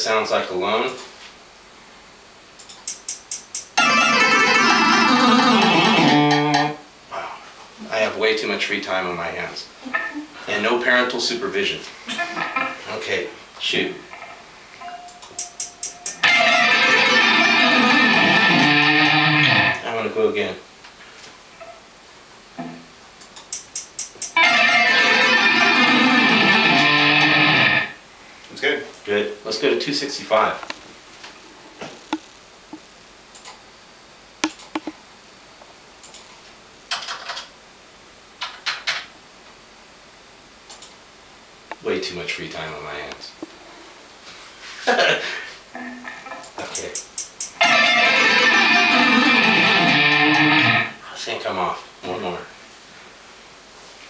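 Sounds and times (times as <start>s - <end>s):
room hiss: 0.0s - 54.0s
scattered clicks: 2.6s - 3.8s, 14.8s - 16.8s, 23.2s - 24.4s, 32.0s - 33.6s, 34.4s - 35.0s, 36.0s - 36.3s, 40.7s - 41.0s, 46.2s - 50.4s
fast electric guitar picking: 3.8s - 6.8s, 15.3s - 19.8s, 24.3s - 28.0s, 45.8s - 51.0s
count-in clicks: 14.8s - 16.3s, 23.2s - 24.4s, 34.4s - 35.0s, 45.8s - 47.6s.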